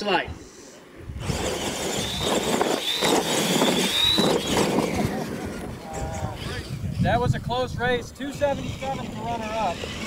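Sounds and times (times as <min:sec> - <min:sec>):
tyres scrabbling on dirt: 0:01.2 - 0:06.8
rc truck motor whine: 0:01.2 - 0:07.2, 0:08.3 - 0:10.0.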